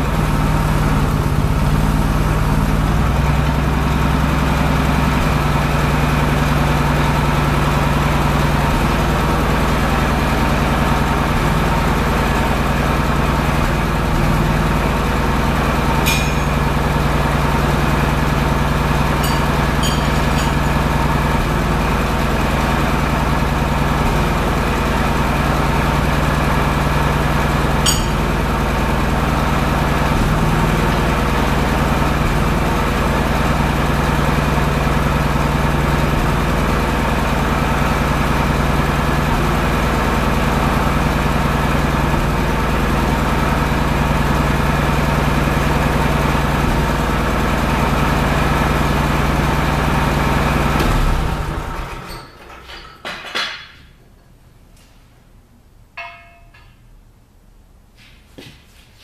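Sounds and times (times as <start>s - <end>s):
forklift engine idling: 0.0s - 52.5s.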